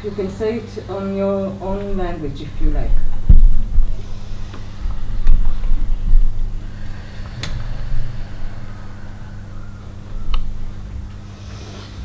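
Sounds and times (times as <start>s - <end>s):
low steady hum with rumbling: 0.0s - 12.0s.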